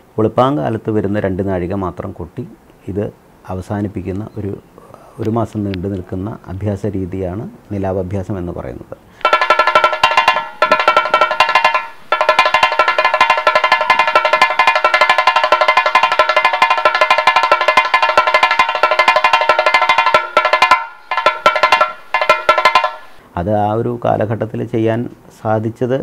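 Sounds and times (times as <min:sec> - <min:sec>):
drum rolls with a stick: 0:09.2 - 0:23.2.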